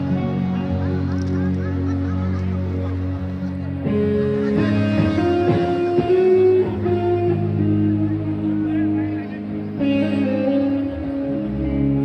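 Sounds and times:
electric guitar long notes: 0.0s - 12.0s.

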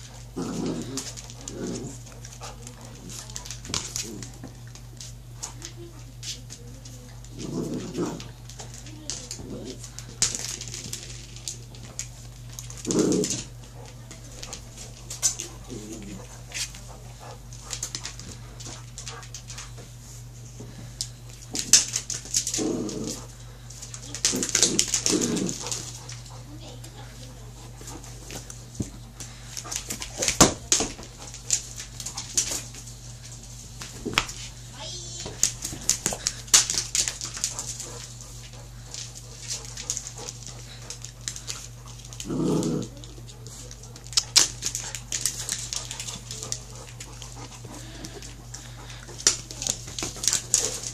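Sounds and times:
dog claws clicking on wooden floor: 0.0s - 19.8s, 20.9s - 50.9s
dog claws and ball knocking on floor: 29.6s - 32.9s, 35.2s - 50.9s.

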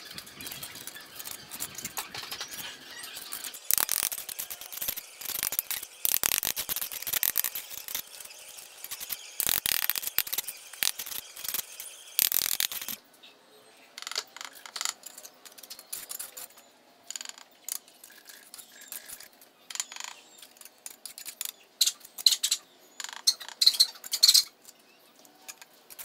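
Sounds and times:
trowel scraping mortar: 0.4s - 13.0s.

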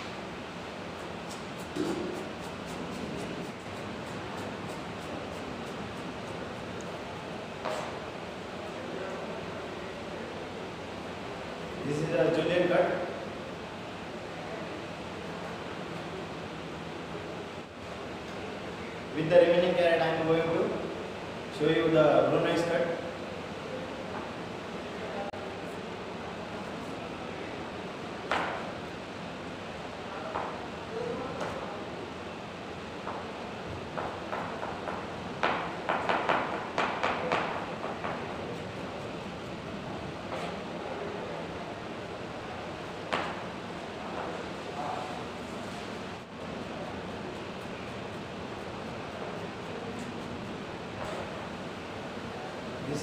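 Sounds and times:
room hiss: 0.0s - 53.0s.

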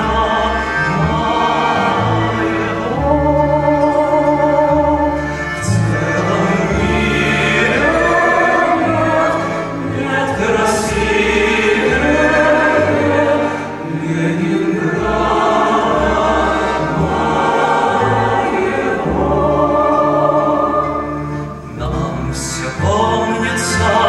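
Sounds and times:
acoustic guitar: 0.0s - 24.0s
mixed choir singing in harmony: 0.0s - 24.0s.

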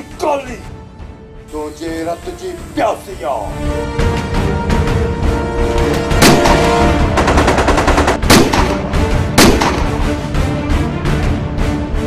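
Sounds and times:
automatic rifle fire: 6.2s - 8.8s, 9.4s - 9.9s
single loud gunshot: 8.3s - 8.8s, 9.4s - 10.0s.

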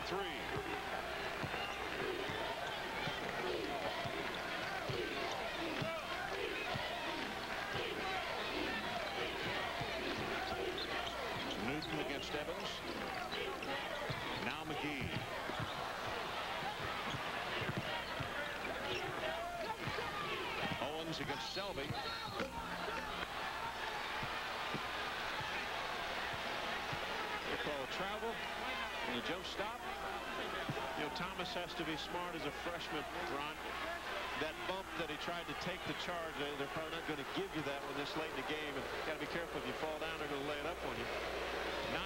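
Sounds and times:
arena crowd talking and shouting: 0.0s - 42.0s.

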